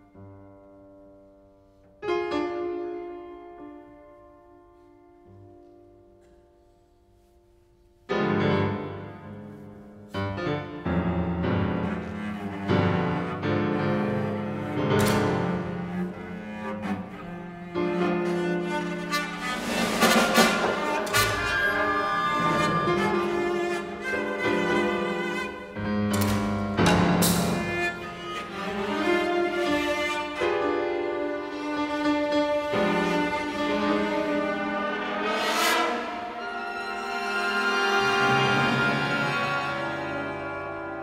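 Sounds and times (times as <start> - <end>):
piano chords: 0.0 - 6.6, 8.0 - 41.0
low cello line: 8.1 - 41.0.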